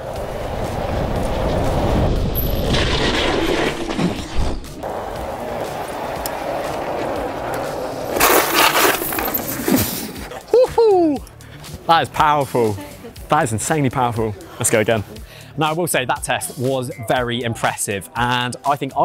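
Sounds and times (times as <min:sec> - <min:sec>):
tyre and wind noise: 0:00.0 - 0:10.4
man exclaiming: 0:10.5 - 0:11.3.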